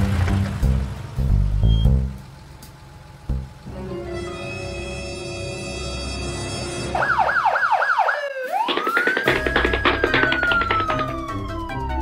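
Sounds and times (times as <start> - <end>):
police siren wailing: 6.8 - 12.0
background music: 8.7 - 12.0.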